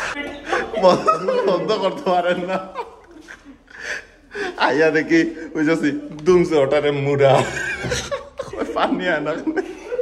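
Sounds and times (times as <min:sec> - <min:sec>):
person gasping breath: 0:03.7 - 0:04.6.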